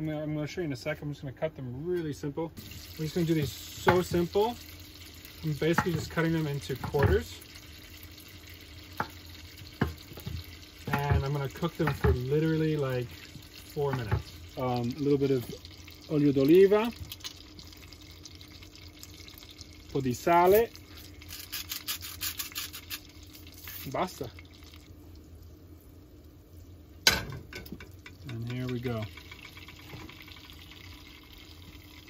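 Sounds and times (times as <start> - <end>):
oil hissing in a pan: 2.6 - 32.0.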